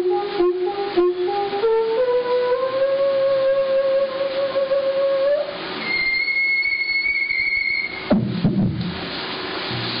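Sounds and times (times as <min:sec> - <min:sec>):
low wavering theremin sounds: 0:00.0 - 0:08.1
theremin whistle-like note: 0:00.0 - 0:08.1
knocks: 0:08.1 - 0:09.0.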